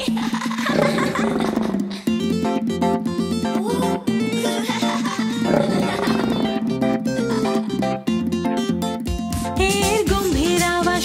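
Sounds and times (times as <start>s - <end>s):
children's song music: 0.0s - 11.0s
cartoon lion roar: 0.7s - 1.9s, 5.4s - 6.6s.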